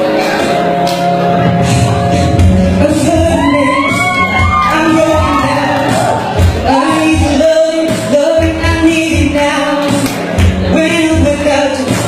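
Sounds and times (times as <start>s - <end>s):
pop backing music with drum beat: 0.0s - 12.0s
man singing into a microphone: 2.7s - 10.0s, 10.6s - 12.0s.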